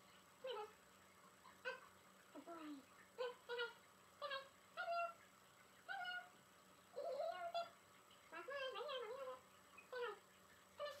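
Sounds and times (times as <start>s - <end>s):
dog whining: 7.0s - 7.7s.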